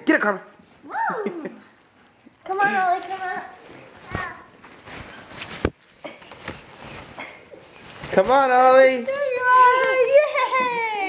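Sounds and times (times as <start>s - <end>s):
fabric play tunnel rustling: 0.1s - 11.0s.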